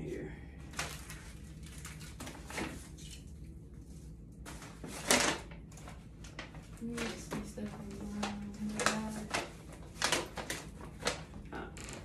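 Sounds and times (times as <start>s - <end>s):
paper bags rustling: 0.6s - 12.0s.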